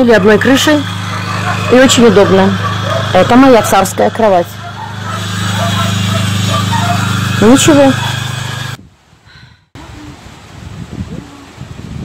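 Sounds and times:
generator humming: 0:00.0 - 0:08.8.

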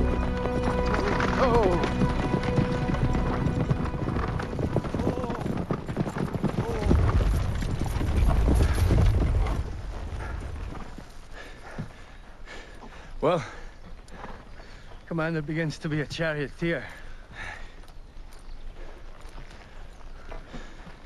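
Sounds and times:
horses' hoofbeats: 0:00.0 - 0:21.0.

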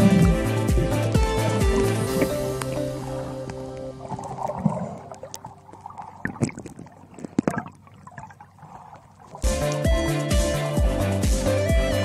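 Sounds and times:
background music: 0:00.0 - 0:05.2, 0:09.4 - 0:12.0
underwater gurgling water: 0:00.0 - 0:09.5
underwater clicks and pops: 0:01.7 - 0:07.8.

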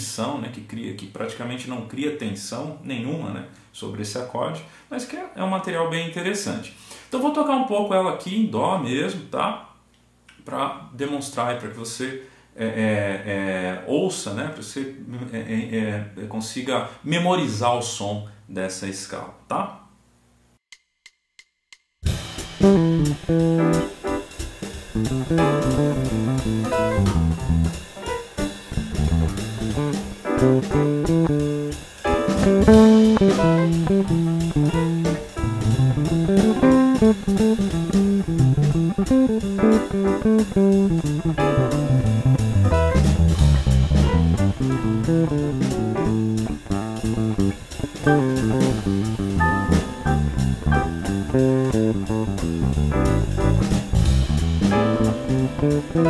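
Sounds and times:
drum groove: 0:21.1 - 0:56.0
electric bass played fingerstyle: 0:22.1 - 0:56.0.

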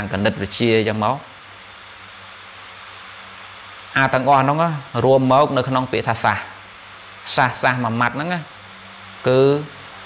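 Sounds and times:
man speaking: 0:00.0 - 0:01.3, 0:03.9 - 0:06.6, 0:07.2 - 0:08.6, 0:09.2 - 0:09.8
faint low hum: 0:00.0 - 0:10.0
room hiss: 0:00.0 - 0:10.0.

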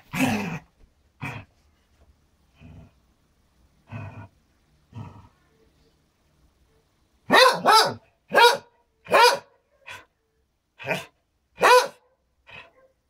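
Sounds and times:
dog barking: 0:07.3 - 0:10.0, 0:10.8 - 0:13.0.

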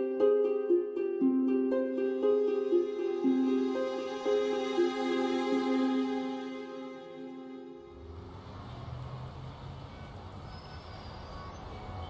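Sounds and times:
soft music: 0:00.0 - 0:08.6
road traffic rumble: 0:07.6 - 0:12.0.

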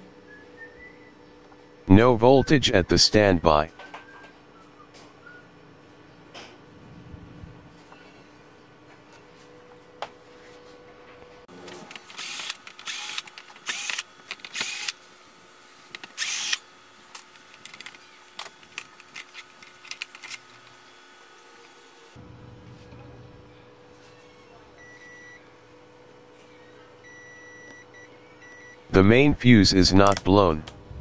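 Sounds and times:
electric screwdriver running: 0:11.9 - 0:15.0, 0:16.0 - 0:16.6.

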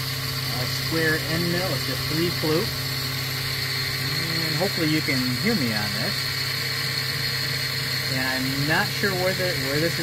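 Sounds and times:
spindle motor whining: 0:00.0 - 0:10.0.

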